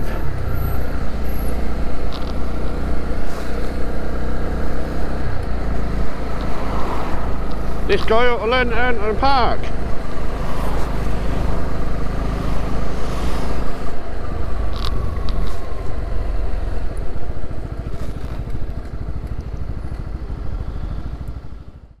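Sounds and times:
motorcycle engine running: 0.0 - 22.0.

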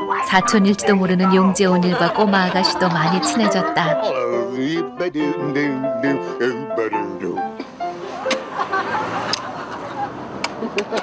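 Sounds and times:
road traffic rushing: 0.0 - 4.0, 7.4 - 11.0.

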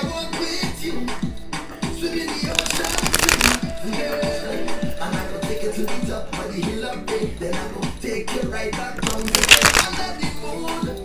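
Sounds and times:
music: 0.0 - 11.0
cards being riffle shuffled: 2.5 - 3.6, 9.0 - 9.9.

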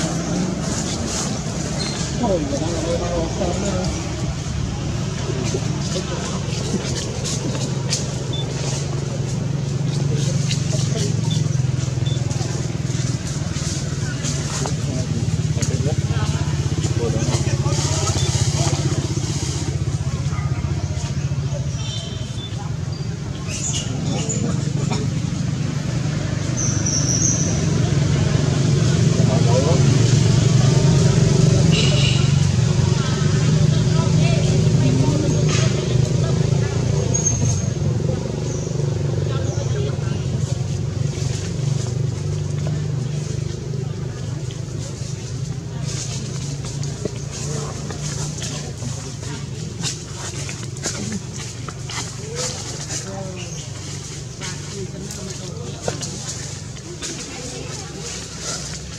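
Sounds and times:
faint voices: 0.0 - 58.9
low engine hum: 0.0 - 58.9.

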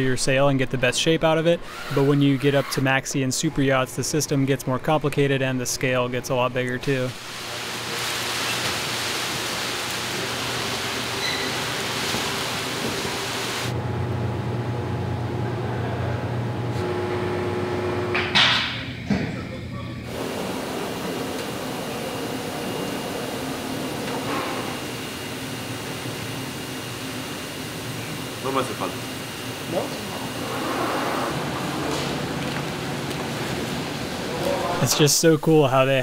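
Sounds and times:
hiss of air-handling and machinery: 7.2 - 13.7, 20.1 - 32.6.

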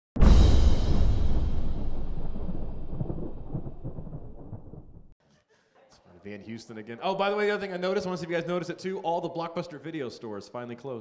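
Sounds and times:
deep rumbling boom: 0.2 - 5.2.

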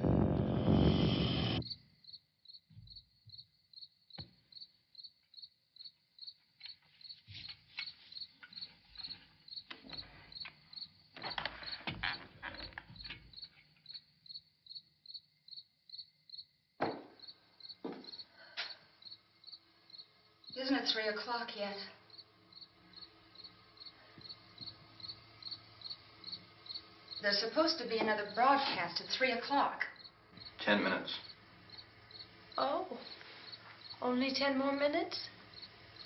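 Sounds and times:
cricket chirping: 1.6 - 36.0.

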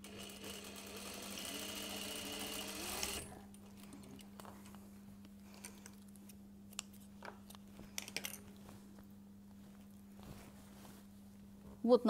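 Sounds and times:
electric sewing machine stitching: 0.0 - 3.4.

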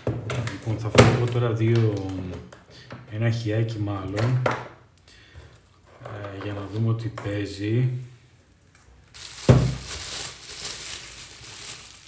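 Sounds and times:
bubble wrap crinkling: 9.0 - 12.0.

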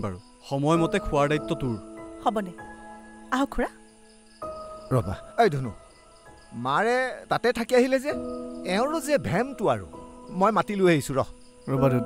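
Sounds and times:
crickets chirping: 0.0 - 12.0
man speaking: 10.4 - 12.0.

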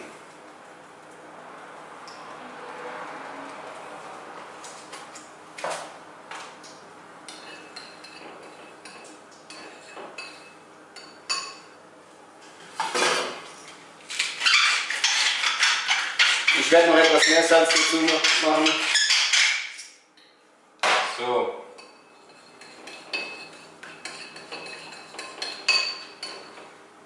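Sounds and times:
metal spoon scraping ceramic bowl: 7.3 - 11.1, 14.6 - 19.8, 21.8 - 26.6.

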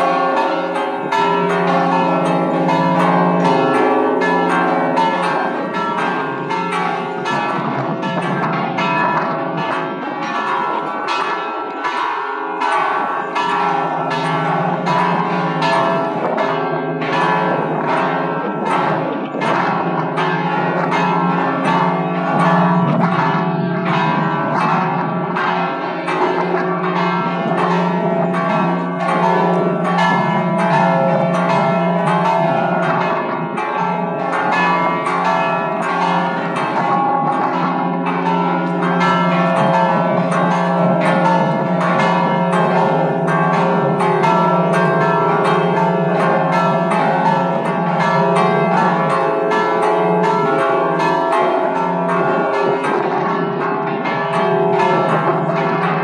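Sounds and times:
church bells pealing: 0.0 - 56.0.

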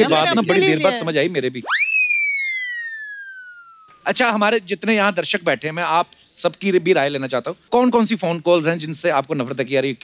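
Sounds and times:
whistle-like tone gliding down: 1.6 - 4.1.

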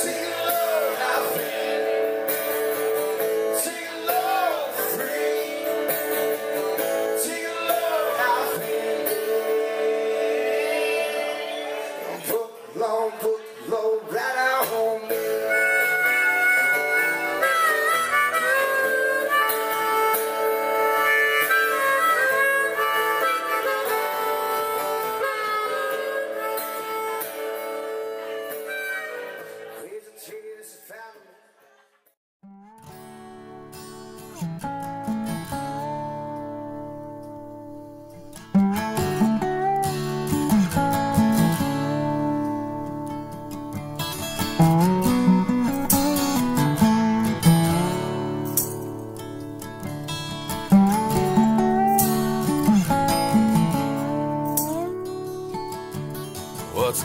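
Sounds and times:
acoustic guitar: 0.0 - 29.9, 32.4 - 57.0
harmonica solo: 15.2 - 29.8, 50.1 - 57.0.

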